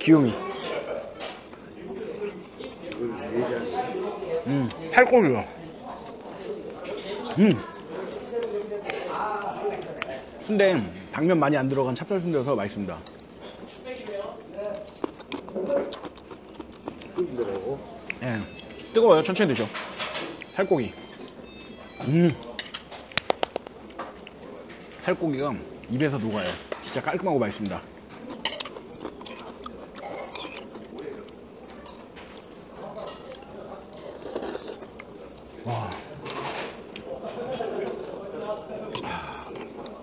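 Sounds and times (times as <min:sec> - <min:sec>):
faint chatter: 0:00.0 - 0:40.0
quiet voices talking: 0:00.0 - 0:40.0
chewing: 0:12.9 - 0:18.9, 0:19.8 - 0:25.0, 0:25.8 - 0:40.0
utensils clinking against bowls: 0:28.2 - 0:34.9.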